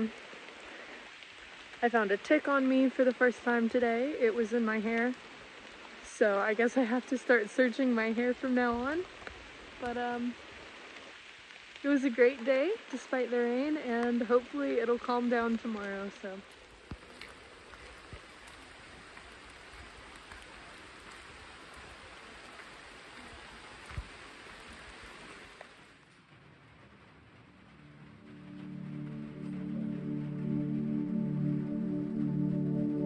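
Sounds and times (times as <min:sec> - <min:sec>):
steady rain: 0:00.0 - 0:33.0
ambient music of sustained chords: 0:27.4 - 0:33.0.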